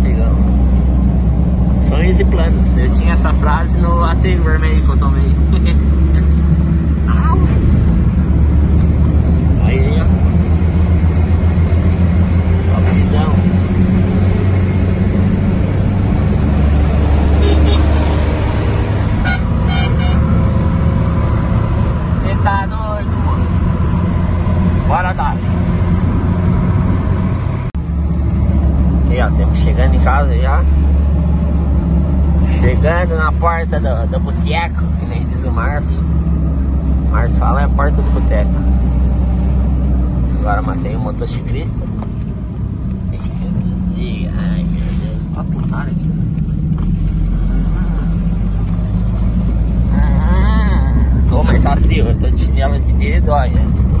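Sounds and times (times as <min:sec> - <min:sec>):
car engine and tyre drone: 0:00.0 - 0:54.0.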